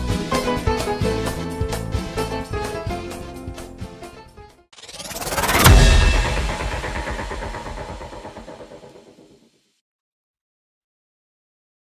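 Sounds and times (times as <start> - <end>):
deep hit with ringing chord: 5.0 - 9.2.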